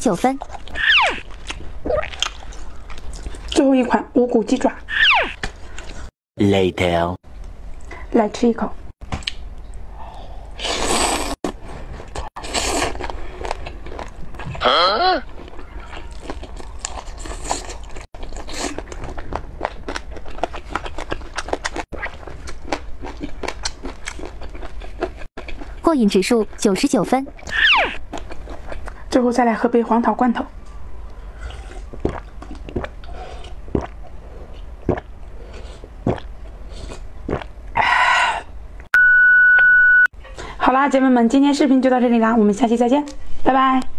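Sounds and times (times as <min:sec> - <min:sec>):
crunchy chewing: 0:15.3 - 0:25.8, 0:27.4 - 0:29.0
person swallowing gulps: 0:31.5 - 0:34.1, 0:34.8 - 0:35.1, 0:36.0 - 0:36.3.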